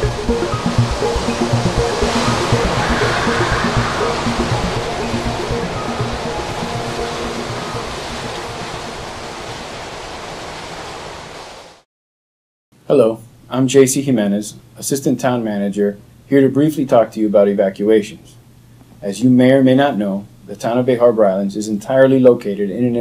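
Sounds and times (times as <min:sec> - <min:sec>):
music: 0:00.0 - 0:09.4
storm wind: 0:00.0 - 0:11.7
heavy rain: 0:00.0 - 0:11.8.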